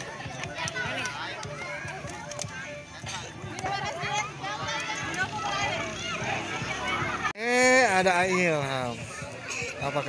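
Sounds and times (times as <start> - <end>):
background music: 0.0 - 8.3
crowd chattering and calling out: 0.0 - 10.0.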